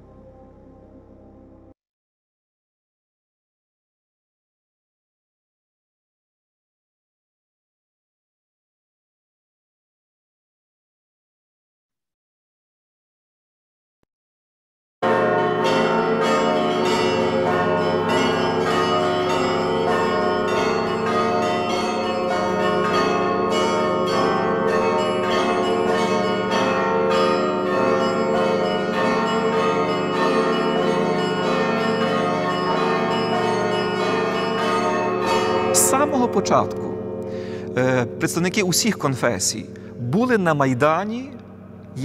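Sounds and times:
church bells pealing: 15.0 - 42.0.

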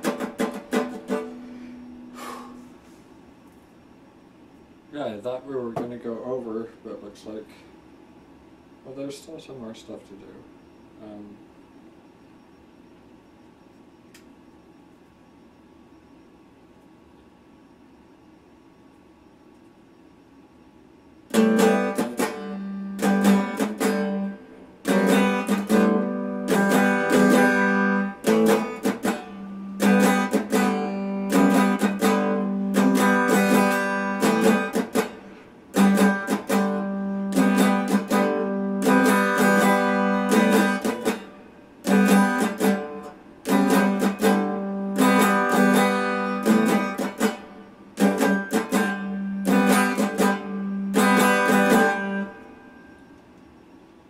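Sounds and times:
electric guitar strumming chords: 0.0 - 2.7, 21.3 - 53.1.

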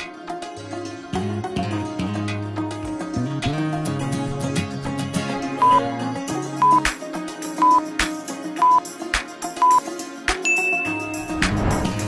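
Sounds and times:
background music: 0.0 - 12.0
short high beep: 6.6 - 6.8.

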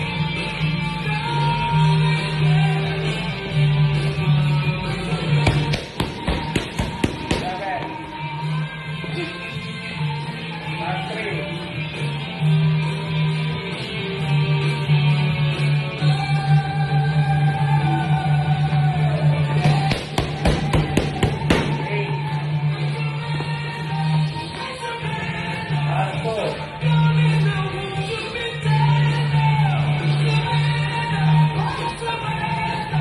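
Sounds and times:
background music: 0.0 - 33.0
boxing gloves hitting focus mitts: 5.4 - 7.9, 19.6 - 21.8.

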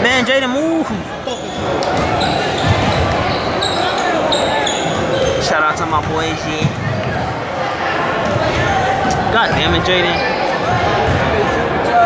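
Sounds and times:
voices chattering: 0.0 - 12.0
sneakers squeaking: 1.0 - 7.2, 8.1 - 11.9
basketballs bouncing on hardwood: 1.6 - 3.7.

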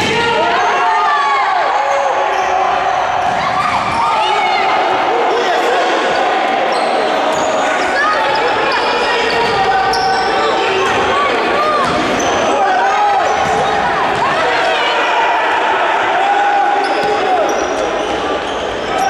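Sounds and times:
players calling out: 0.0 - 19.0
sneakers squeaking on floor: 6.1 - 12.6, 16.8 - 19.0.

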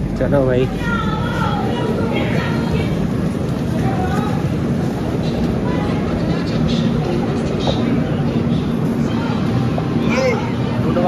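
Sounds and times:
stationary train rumble and hum: 0.0 - 11.0.

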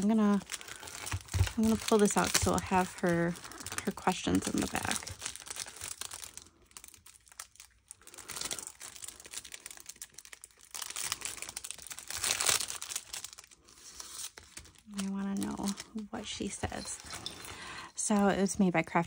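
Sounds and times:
plastic sleeve crinkling: 0.0 - 19.0.

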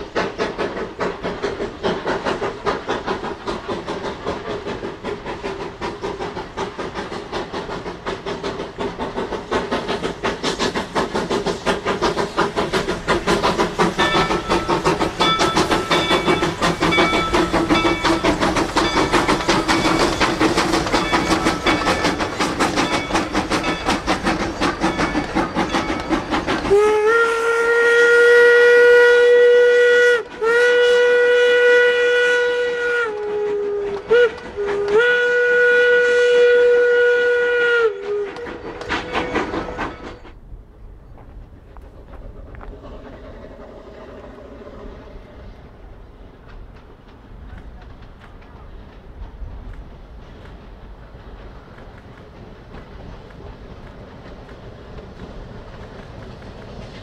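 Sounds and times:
steam train clattering past: 0.0 - 57.0
steam whistle blasts: 26.6 - 40.2.

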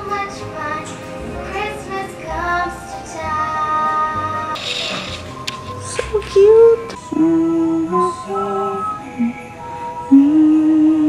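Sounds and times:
child singing with instrumental backing: 0.0 - 11.0.

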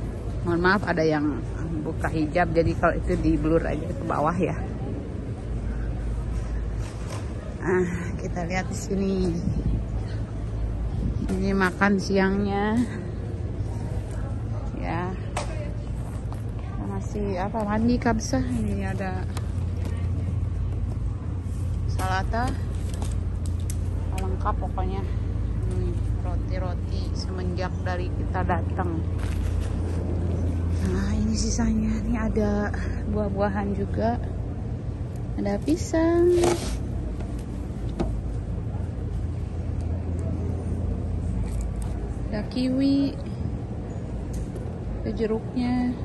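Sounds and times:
air conditioning hum: 0.0 - 46.0.

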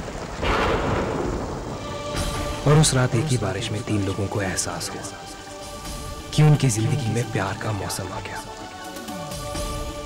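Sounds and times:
thunder rumble: 0.0 - 7.2
heavy rain: 0.0 - 10.0.

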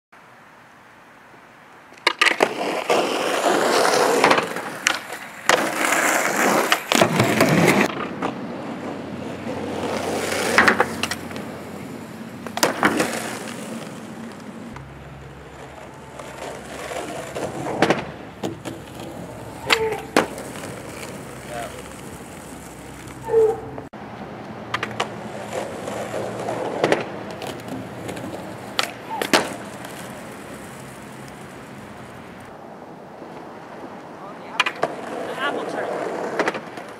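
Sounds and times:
skateboard wheels rolling on pavement: 0.2 - 36.9
skateboard clacks: 1.9 - 23.9, 24.7 - 32.5, 33.7 - 36.9.

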